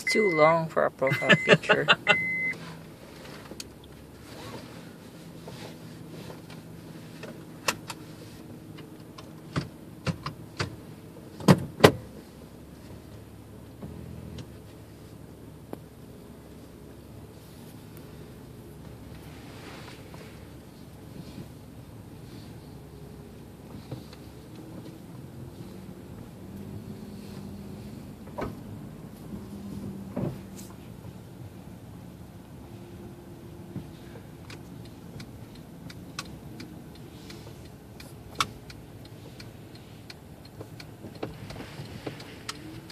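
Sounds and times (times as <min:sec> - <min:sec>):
car idling from inside: 0:00.0 - 0:42.9.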